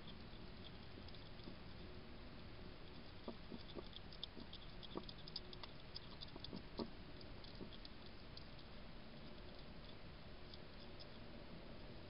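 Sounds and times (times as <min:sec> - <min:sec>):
hedgehog eating clicks and crunches: 0:00.0 - 0:12.0
steady low hiss: 0:00.0 - 0:12.0.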